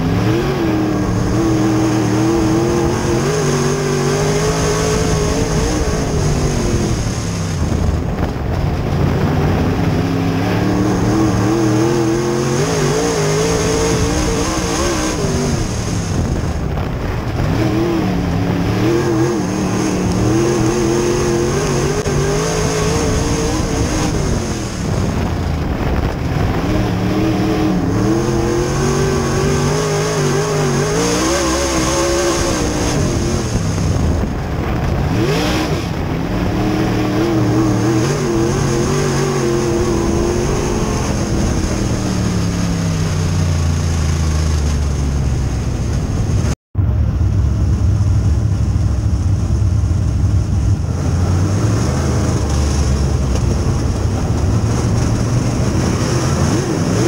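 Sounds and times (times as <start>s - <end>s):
race car engine: 0.0s - 57.0s.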